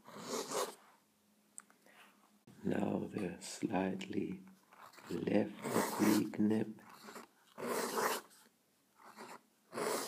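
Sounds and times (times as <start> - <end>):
fountain pen scratching on paper: 0.0 - 0.8, 4.7 - 8.4, 9.0 - 10.0.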